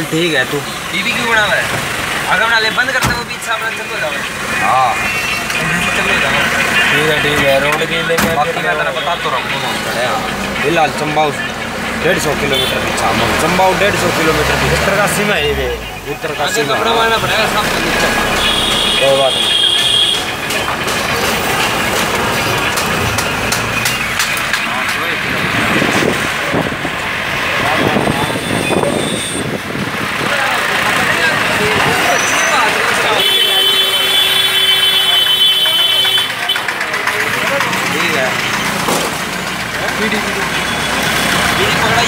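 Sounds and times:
people talking: 0:00.0 - 0:42.0
vehicle engines and motorbikes: 0:00.0 - 0:42.0.

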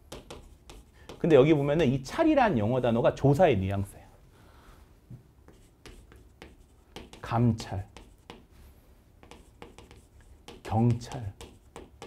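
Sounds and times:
chalk tapping and scraping: 0:00.1 - 0:01.9, 0:05.1 - 0:08.6, 0:09.2 - 0:12.0.

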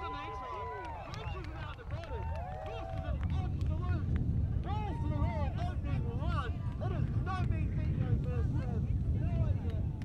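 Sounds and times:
wind noise on microphone: 0:00.0 - 0:10.0.

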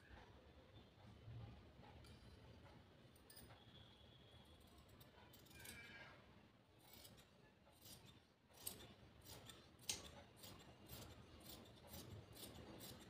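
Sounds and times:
shears snipping cloth: 0:07.8 - 0:13.0.

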